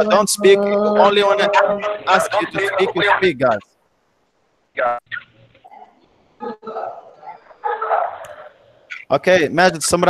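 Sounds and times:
muffled background noise: 0.0 - 10.0.

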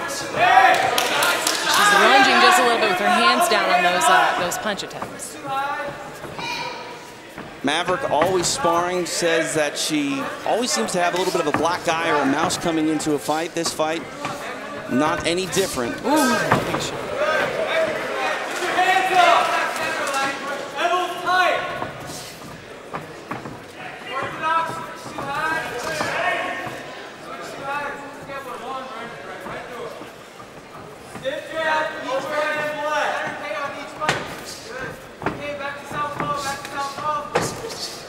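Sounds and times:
people shouting in a hall: 0.0 - 4.6.

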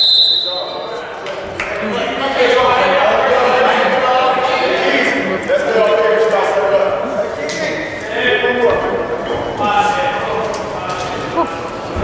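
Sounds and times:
people calling out and talking: 0.0 - 12.0.

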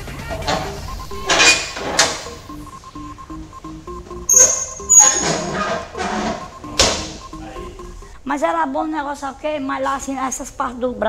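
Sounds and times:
background music melody: 0.0 - 9.8.

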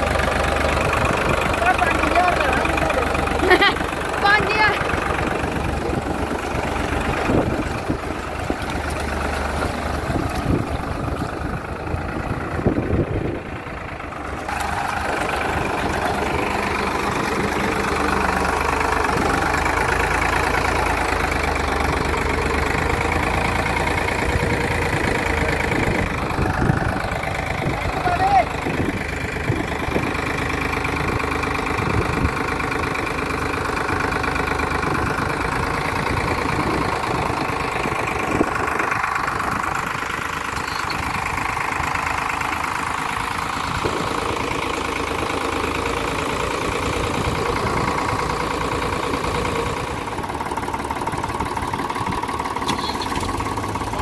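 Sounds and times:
diesel tractor engines idling: 0.0 - 54.0.

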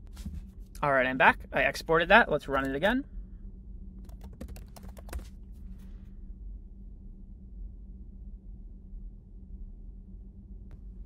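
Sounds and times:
faint steady hum: 0.0 - 11.0
keyboard typing: 2.4 - 2.9, 4.0 - 5.3.

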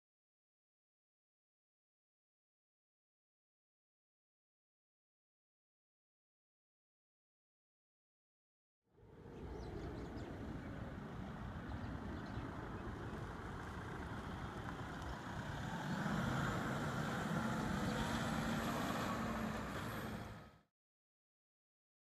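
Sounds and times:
vehicle engine and tyres: 9.0 - 20.7.

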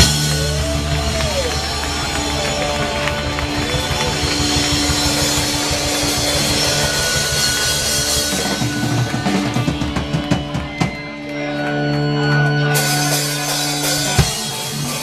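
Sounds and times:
drum kit with cymbals: 0.0 - 11.2, 12.8 - 15.0
bass guitar: 0.0 - 15.0
electric guitars: 0.0 - 15.0.

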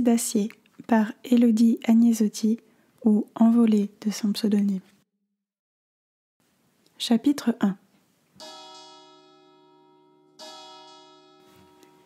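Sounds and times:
church bell tolling: 8.4 - 12.0.

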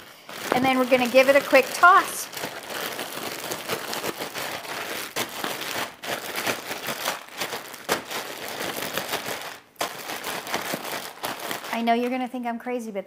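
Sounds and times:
food tumbling in bag: 0.0 - 12.2
plastic bag crinkling: 0.0 - 12.4.

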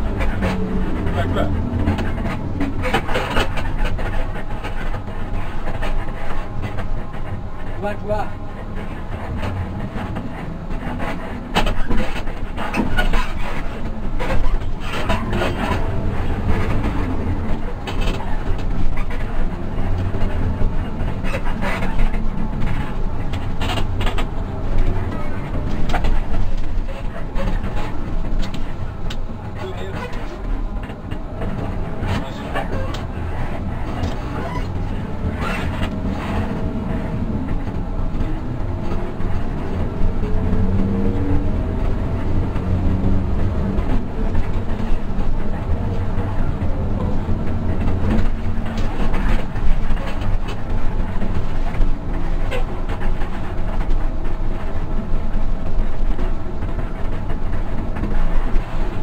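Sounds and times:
bus body rattles: 0.0 - 59.0
bus diesel engine running: 0.0 - 59.0
road rumble: 0.0 - 59.0.

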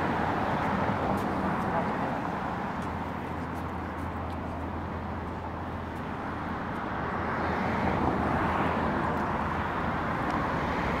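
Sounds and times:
road traffic rushing past: 0.0 - 11.0.

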